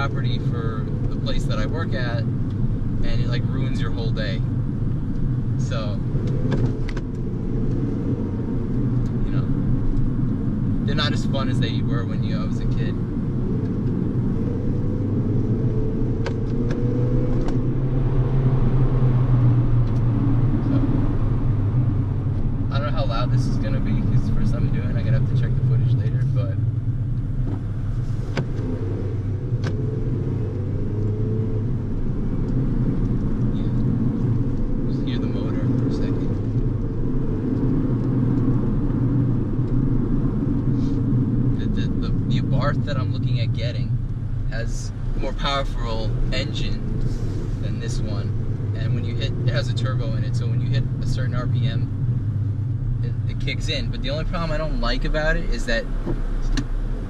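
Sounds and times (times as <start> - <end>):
car engine drone: 0.0 - 57.0
road noise: 0.0 - 57.0.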